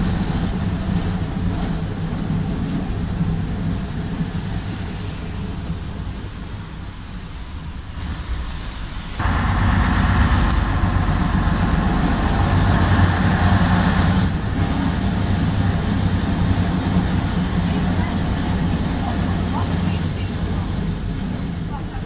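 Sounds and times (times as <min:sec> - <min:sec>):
bus diesel engine running: 0:00.0 - 0:22.0
higher drone: 0:09.2 - 0:22.0.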